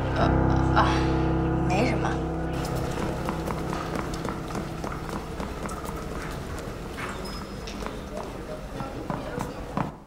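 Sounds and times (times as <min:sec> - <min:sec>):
quick footsteps on hard floor: 0:02.6 - 0:08.0.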